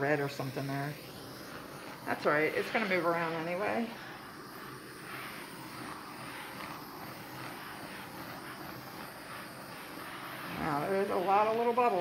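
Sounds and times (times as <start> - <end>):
gas torch hissing: 0.0 - 12.0.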